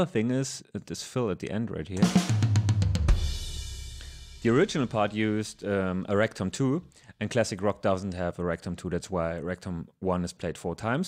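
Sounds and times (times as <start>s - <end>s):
tom drum fill: 2.0s - 5.7s
crash cymbal: 3.0s - 5.4s.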